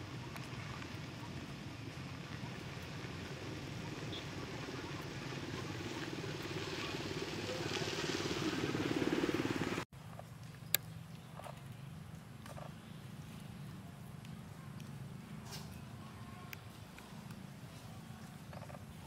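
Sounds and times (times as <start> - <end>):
vehicle engine running: 0.0 - 9.9
outdoor ambience: 0.0 - 19.0.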